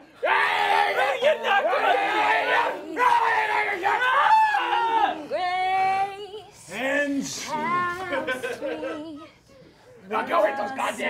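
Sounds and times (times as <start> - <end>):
people yelling together: 0.2 - 5.3.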